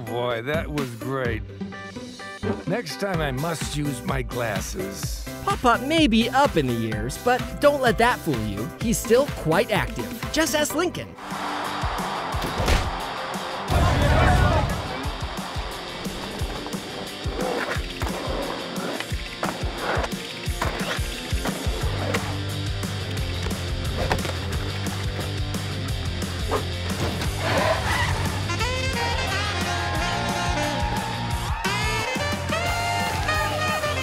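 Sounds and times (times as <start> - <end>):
band music: 2.6 - 11.5, 24.6 - 34.0
skateboard wheels rolling: 15.2 - 22.4.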